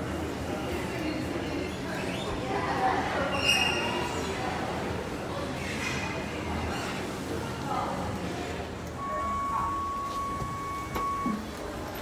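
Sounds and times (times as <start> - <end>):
elevator electronic beep: 9.0 - 11.7.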